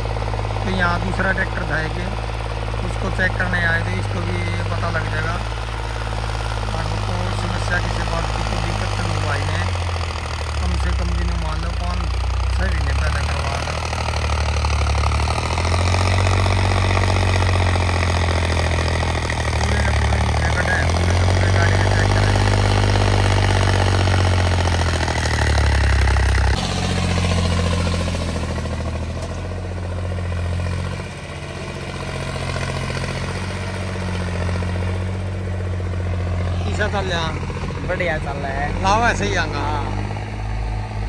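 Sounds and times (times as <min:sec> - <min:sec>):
tractor diesel engine under load: 0:00.0 - 0:41.0.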